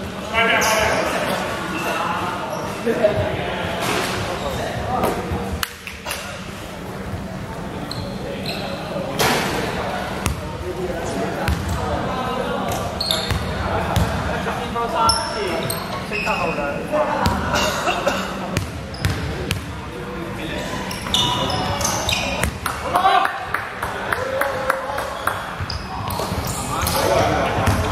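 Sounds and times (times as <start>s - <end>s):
sneakers squeaking: 0.4s - 6.5s, 7.1s - 12.0s, 12.6s - 17.6s, 18.4s - 19.8s, 20.5s - 22.8s, 25.0s - 27.9s
basketball bouncing: 11.5s - 11.8s, 18.6s - 19.7s.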